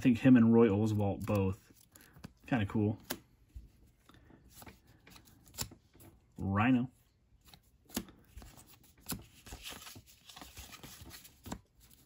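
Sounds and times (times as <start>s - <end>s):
cards sliding and rustling: 0.9s - 6.3s, 7.4s - 12.0s.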